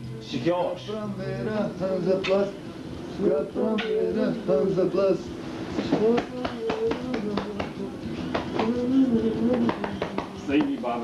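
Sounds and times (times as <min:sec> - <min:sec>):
hands patting a back: 0:05.8 - 0:11.0.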